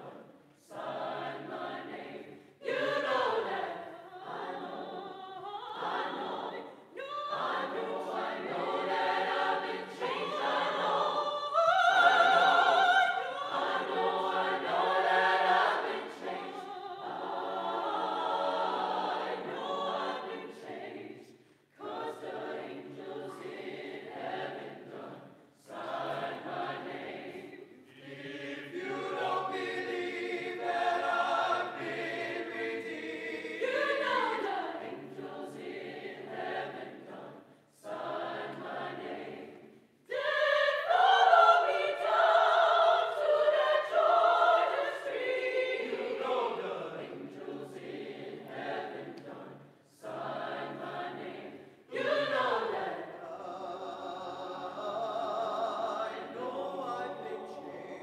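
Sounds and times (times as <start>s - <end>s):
choir singing: 0.0s - 58.0s.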